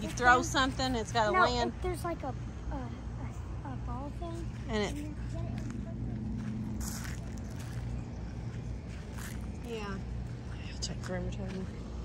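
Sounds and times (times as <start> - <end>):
steady low rumble: 0.0 - 12.0
footsteps on grass and gravel: 4.4 - 12.0.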